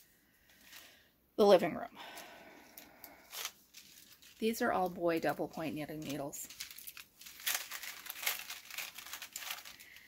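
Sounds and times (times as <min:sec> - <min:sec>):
wrapping crinkling and rustling: 0:00.4 - 0:01.0, 0:02.0 - 0:10.0.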